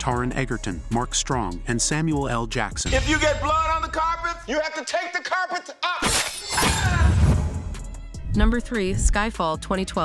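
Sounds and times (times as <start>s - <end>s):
film score music: 0.0s - 4.6s, 6.6s - 10.0s
glass shattering crash: 6.0s - 7.2s.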